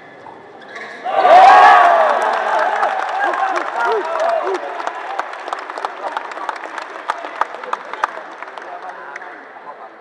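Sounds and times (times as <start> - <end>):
audience applauding: 1.5 - 9.3.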